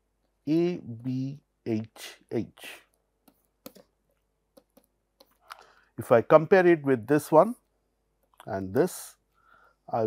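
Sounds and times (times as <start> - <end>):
stylus tapping on pen tablet: 3.2 - 3.9, 4.5 - 5.5.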